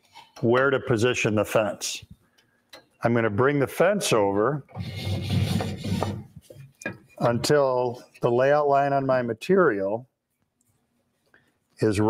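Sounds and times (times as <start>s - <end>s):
jointer fence scraping: 4.7s - 6.4s.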